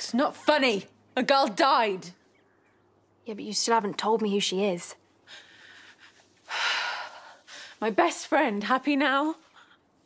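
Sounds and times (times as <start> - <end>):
woman speaking: 0.0 - 2.2, 3.2 - 5.0, 7.8 - 9.6.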